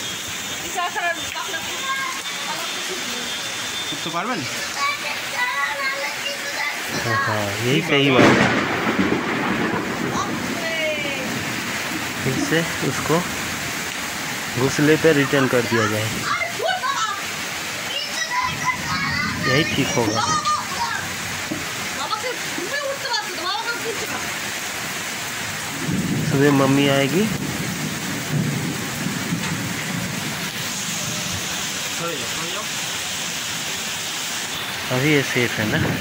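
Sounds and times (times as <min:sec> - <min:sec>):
heavy rain falling: 0:00.0 - 0:36.0.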